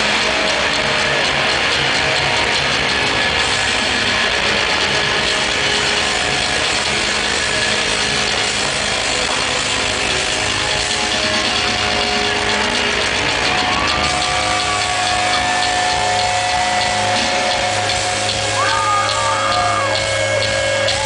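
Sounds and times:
crowd: 0:00.0 - 0:21.0
distorted live rock band: 0:00.0 - 0:21.0.

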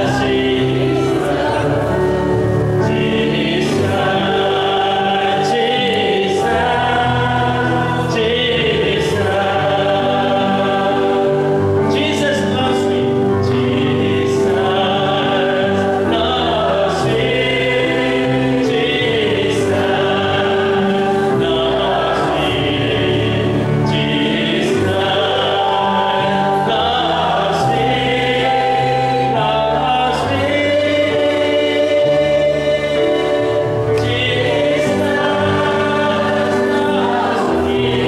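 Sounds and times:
electronic keyboard chords: 0:00.0 - 0:38.0
group of voices singing: 0:00.0 - 0:38.0
man singing: 0:02.8 - 0:18.0, 0:18.7 - 0:33.4.

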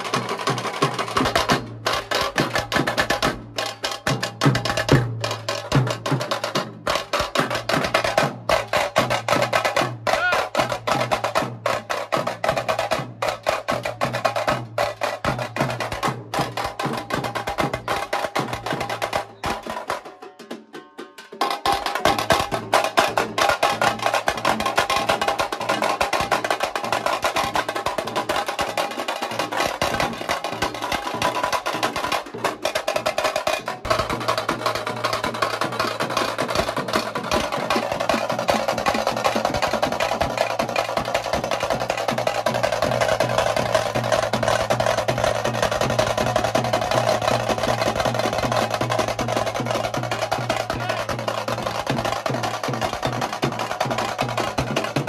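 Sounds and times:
fast dense drumming: 0:00.0 - 0:20.1, 0:21.4 - 0:55.0.

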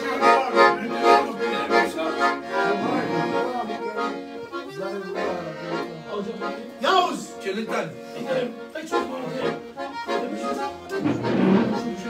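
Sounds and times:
piano accordion playing: 0:00.0 - 0:12.0.

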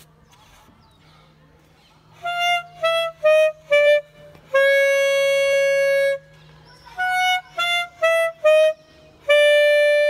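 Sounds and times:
alto saxophone note: 0:02.2 - 0:06.3, 0:07.0 - 0:10.0.

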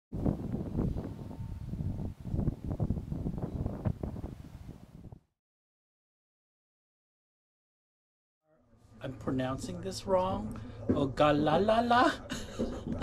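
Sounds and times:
wind buffeting microphone: 0:00.1 - 0:05.3.

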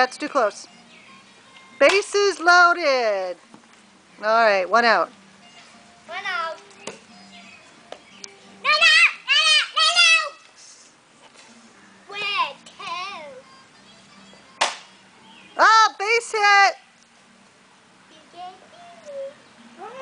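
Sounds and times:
children calling and shouting: 0:05.6 - 0:10.9, 0:12.0 - 0:16.0, 0:18.0 - 0:20.0
plastic bat striking ball: 0:14.6 - 0:14.9.

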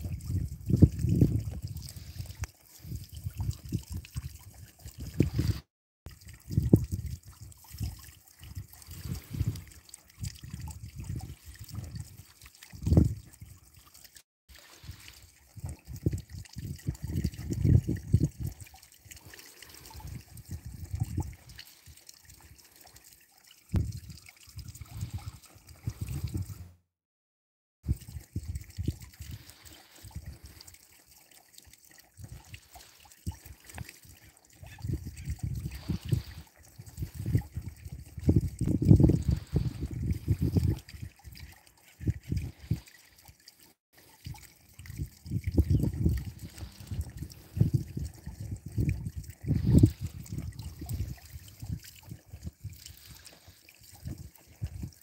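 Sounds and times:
water trickling in pond: 0:00.0 - 0:26.9, 0:27.8 - 0:55.0.

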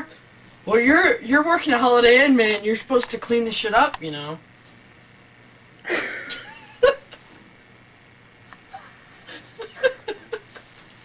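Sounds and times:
person stifling laughter: 0:05.8 - 0:07.3, 0:08.6 - 0:10.8.

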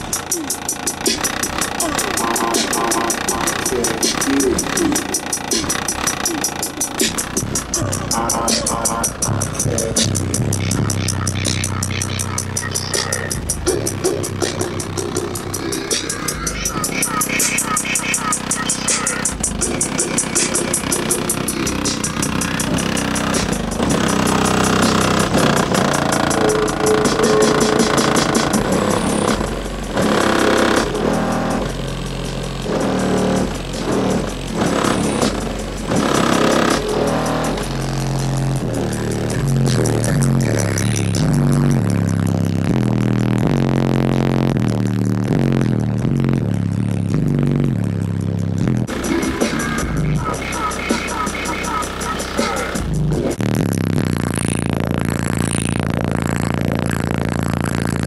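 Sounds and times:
loud bass-heavy car stereo music: 0:00.0 - 0:58.0.

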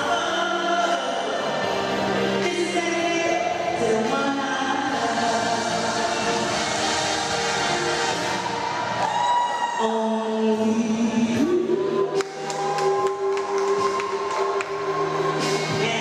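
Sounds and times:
woman singing gospel song: 0:00.0 - 0:08.3, 0:15.6 - 0:16.0
musical accompaniment: 0:00.0 - 0:16.0.

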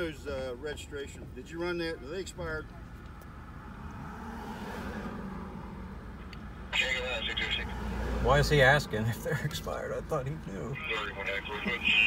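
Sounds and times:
road noise rushing: 0:02.2 - 0:12.0.

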